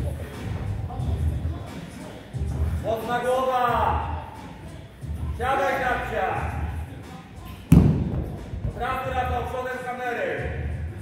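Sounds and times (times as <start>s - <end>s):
kettlebell thud on rubber floor: 7.7s - 8.4s.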